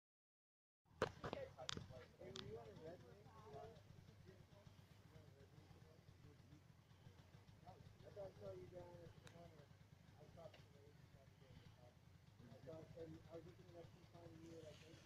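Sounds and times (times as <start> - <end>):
faint distant voices talking: 1.0 - 15.0.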